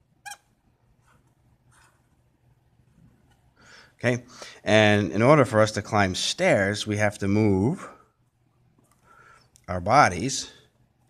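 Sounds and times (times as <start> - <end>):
marker squeaking on whiteboard: 0.2 - 2.1.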